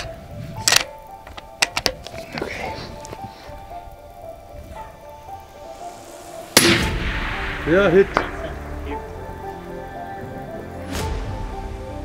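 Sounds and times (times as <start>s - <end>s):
background music: 0.0s - 12.0s
rifle bolt clicking: 0.6s - 2.2s.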